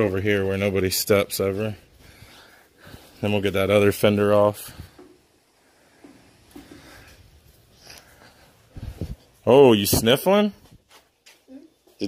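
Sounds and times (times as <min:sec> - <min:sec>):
faint breathing: 0:01.7 - 0:03.4, 0:04.5 - 0:09.4.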